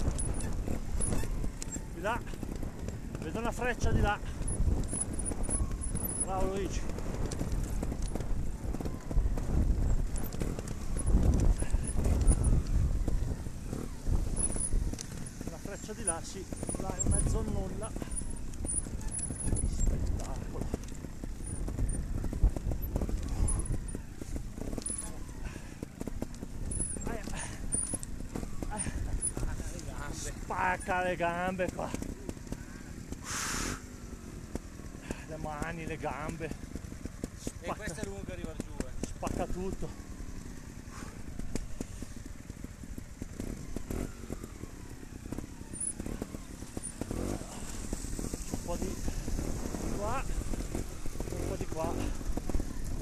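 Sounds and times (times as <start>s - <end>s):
motorcycle engine low rumble: 0.0s - 53.0s
motorcycle knocking and rattling: 0.0s - 53.0s
short loud hiss: 33.2s - 33.8s.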